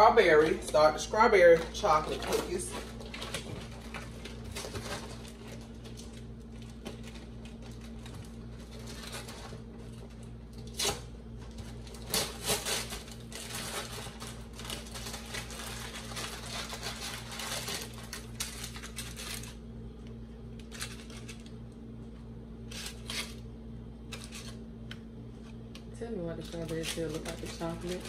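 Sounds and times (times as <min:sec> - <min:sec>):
paper bag rustling and crinkling: 0:00.0 - 0:19.6, 0:20.6 - 0:21.5, 0:26.4 - 0:28.0.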